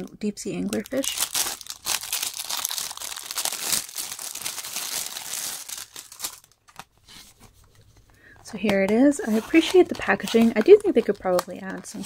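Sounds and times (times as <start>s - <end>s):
plastic wrapping crinkling: 0.6s - 6.9s, 9.5s - 12.0s.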